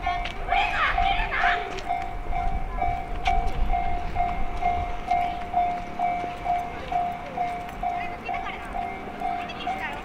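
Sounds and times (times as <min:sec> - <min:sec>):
level-crossing alarm bell ringing: 0:00.9 - 0:10.0.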